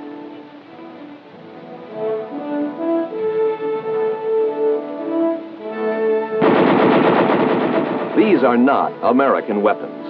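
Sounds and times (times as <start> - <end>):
machine gun automatic fire: 6.4 - 8.4.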